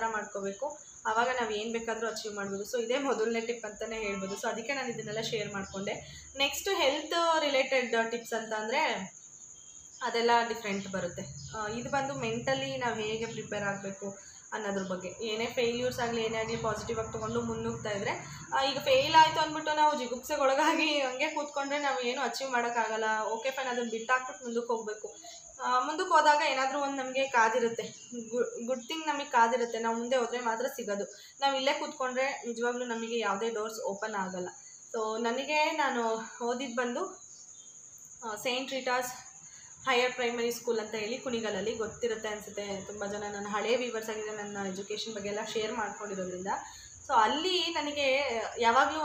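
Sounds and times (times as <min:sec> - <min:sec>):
woman speaking: 0:00.0 - 0:09.1, 0:10.0 - 0:37.1, 0:39.9 - 0:49.0
woman talking: 0:00.0 - 0:09.1, 0:10.0 - 0:37.2, 0:38.2 - 0:39.2, 0:39.9 - 0:49.0
faint high-pitched whine: 0:00.0 - 0:49.0.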